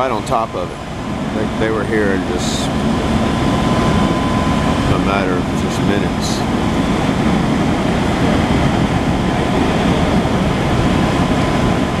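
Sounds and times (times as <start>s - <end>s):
diesel engines rumbling: 0.0s - 12.0s.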